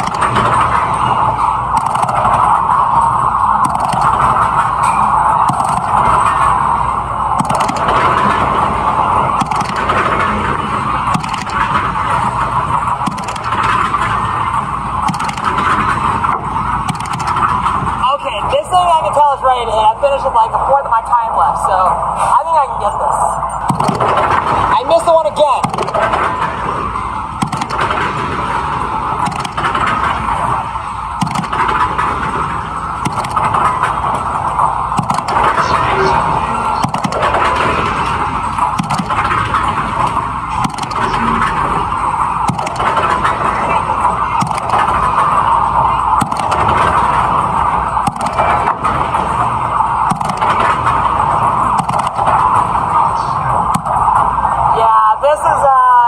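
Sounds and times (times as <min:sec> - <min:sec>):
game machine sounds: 0:00.0 - 0:55.7.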